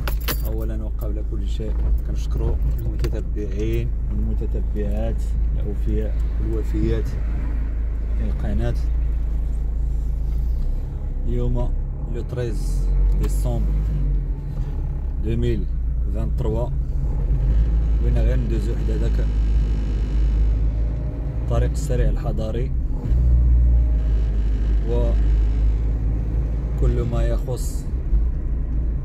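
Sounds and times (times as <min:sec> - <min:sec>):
car engine and road noise: 0:00.0 - 0:29.0.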